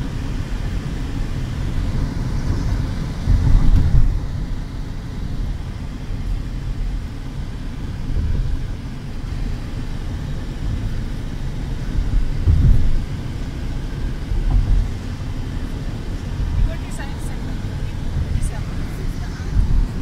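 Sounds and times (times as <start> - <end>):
car driving at highway speed: 0.0 - 20.0.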